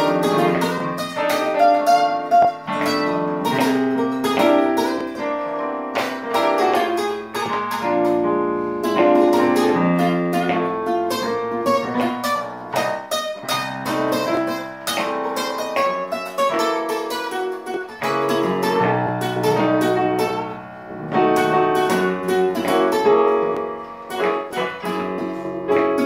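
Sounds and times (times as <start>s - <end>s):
classical guitar single-note lines: 0.0s - 26.0s
piano chords: 0.0s - 26.0s.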